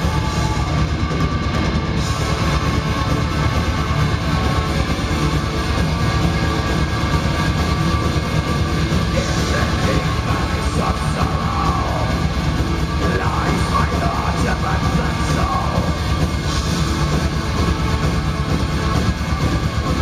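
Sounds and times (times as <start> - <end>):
metal band playing live: 0.0 - 20.0.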